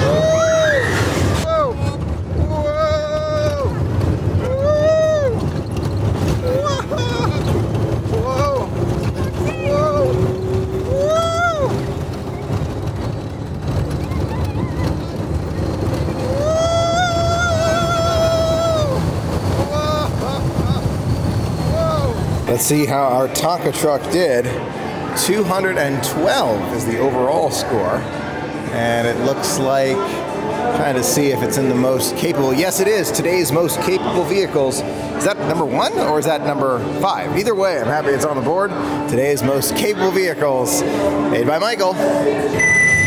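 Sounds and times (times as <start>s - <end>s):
riders whooping: 0.0s - 22.4s.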